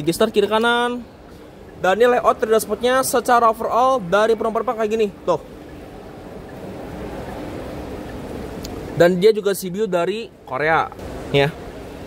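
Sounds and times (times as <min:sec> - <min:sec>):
indoor hall background rumble: 0:00.0 - 0:12.0.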